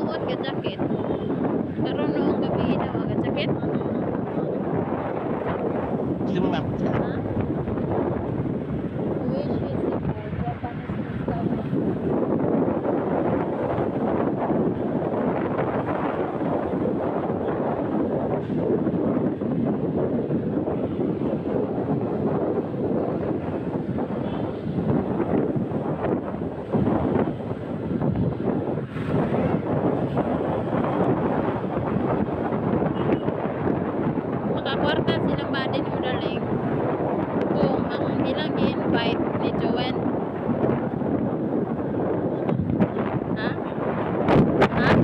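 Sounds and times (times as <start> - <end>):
road noise: 0.0 - 45.0
wind buffeting microphone: 0.0 - 45.0.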